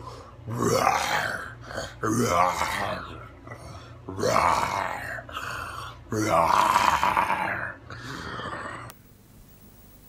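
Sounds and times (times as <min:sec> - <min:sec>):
man roaring: 0:00.5 - 0:08.9.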